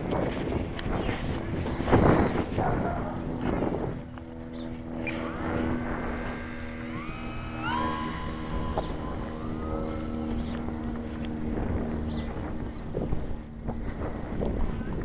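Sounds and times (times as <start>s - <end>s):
model plane motor whining: 0.0s - 15.0s.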